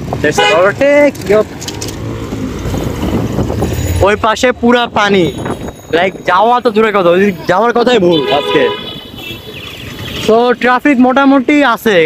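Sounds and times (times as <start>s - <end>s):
wind on microphone: 2.3s - 4.0s.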